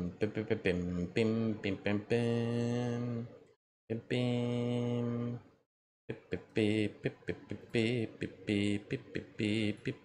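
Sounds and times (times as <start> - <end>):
man humming: 0.0 - 1.5, 4.0 - 5.4, 6.1 - 10.0.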